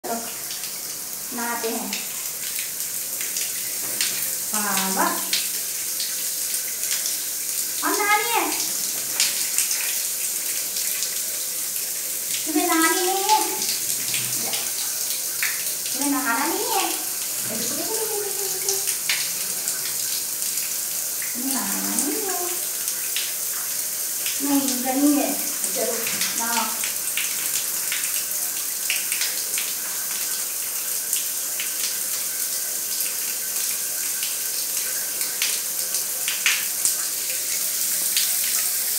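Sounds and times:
shower spraying onto tiled floor: 0:00.0 - 0:38.9.

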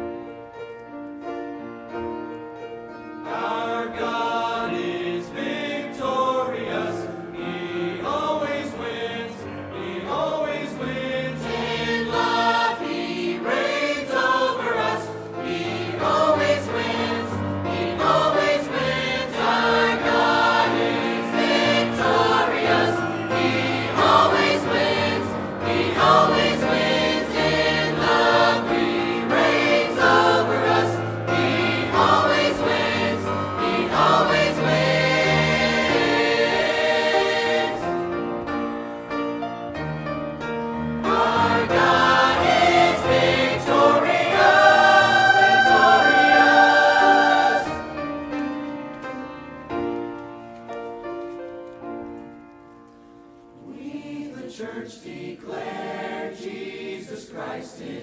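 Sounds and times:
mixed church choir singing: 0:02.8 - 0:39.5, 0:40.4 - 0:50.2, 0:52.9 - 0:58.0.

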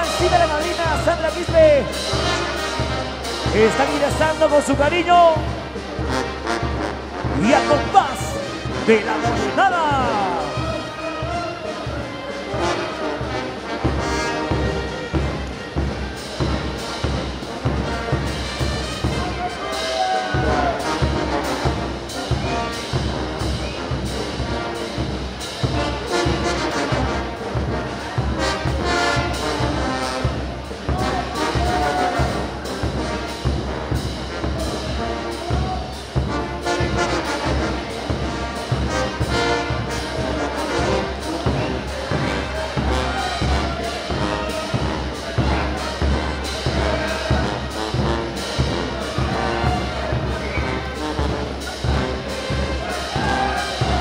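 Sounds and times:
brass band playing dance music: 0:00.0 - 0:54.0
steady drum beat: 0:00.0 - 0:54.0.

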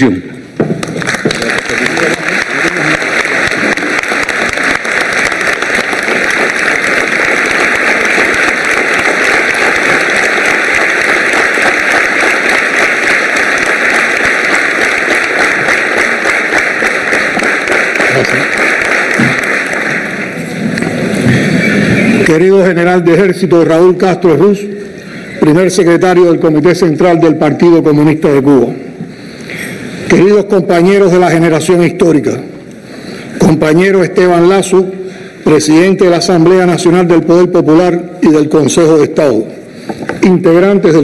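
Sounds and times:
audience applause: 0:00.8 - 0:21.7.

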